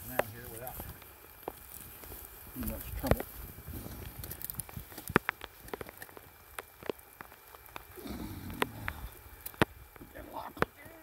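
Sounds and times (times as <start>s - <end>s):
soft low rustle: 0.0s - 11.0s.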